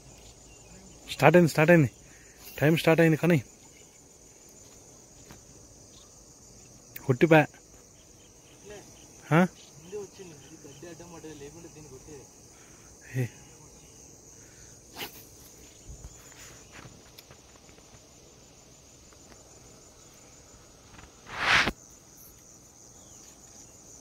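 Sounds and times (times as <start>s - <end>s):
crickets chirping: 0.0s - 24.0s.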